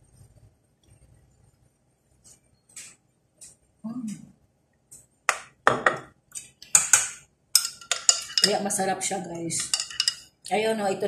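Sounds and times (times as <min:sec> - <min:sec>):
metal spoon clinking on pot: 0:06.7 - 0:08.8, 0:09.6 - 0:10.3.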